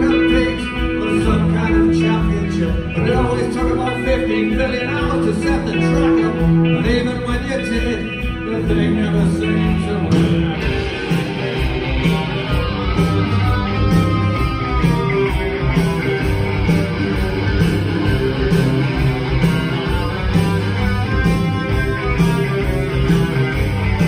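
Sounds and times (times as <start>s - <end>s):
held electric guitar line: 0.0s - 24.0s
rock band playing: 0.0s - 24.0s.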